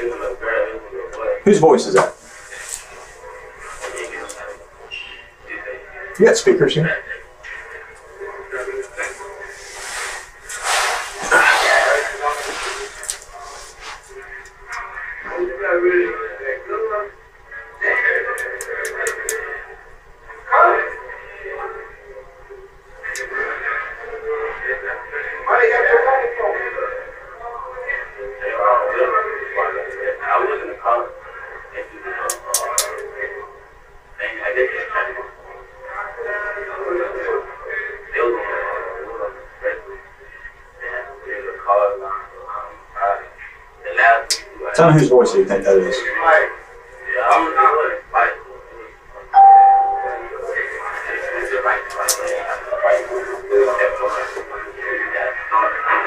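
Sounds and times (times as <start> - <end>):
tinny muffled voices from speaker: 0.0 - 33.6, 34.2 - 56.0.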